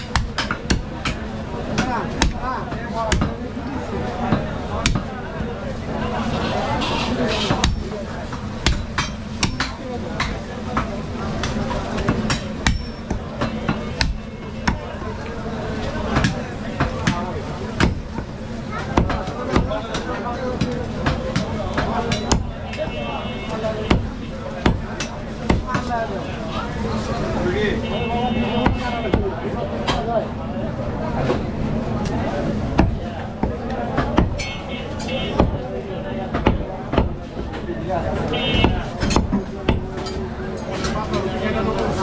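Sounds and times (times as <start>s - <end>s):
cleaver chopping meat on wood: 0.0s - 3.4s, 4.3s - 5.2s, 7.5s - 14.9s, 16.1s - 22.9s, 23.8s - 25.9s, 28.6s - 29.4s, 32.7s - 34.5s, 35.3s - 35.6s, 36.3s - 37.4s, 38.5s - 40.0s.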